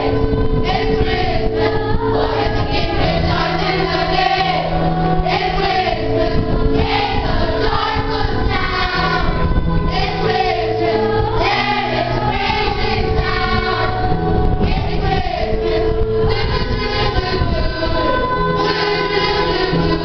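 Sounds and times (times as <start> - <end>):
children's choir singing a carol: 0.0 - 20.0.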